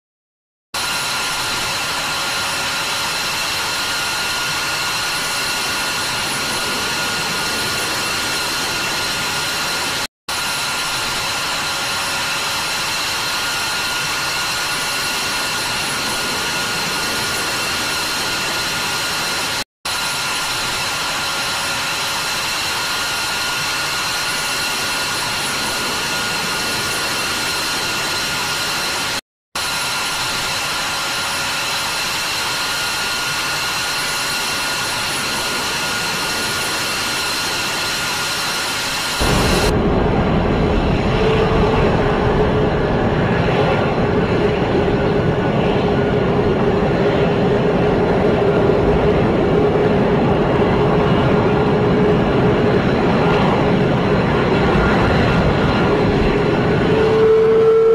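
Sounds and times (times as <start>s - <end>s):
jet engine running: 0.8s - 57.9s.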